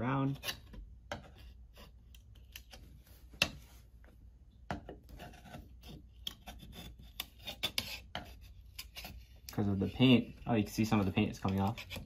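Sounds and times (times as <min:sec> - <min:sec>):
screwdriver scraping and clicking: 0:10.9 - 0:12.0.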